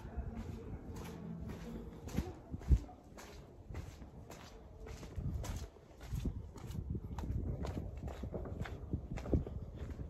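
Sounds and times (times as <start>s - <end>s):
footsteps on hard surface: 0.0s - 10.0s.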